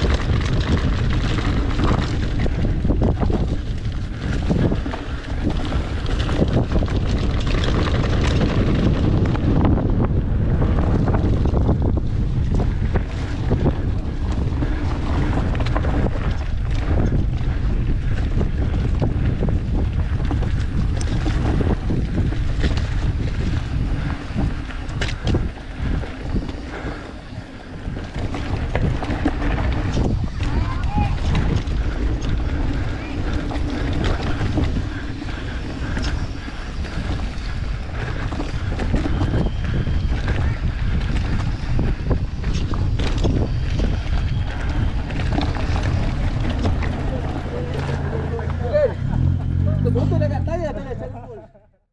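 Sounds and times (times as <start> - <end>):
bike knocking and rattling: 0.0 - 50.3
tyres rumbling on dirt: 0.0 - 51.6
wind buffeting microphone: 0.0 - 51.8.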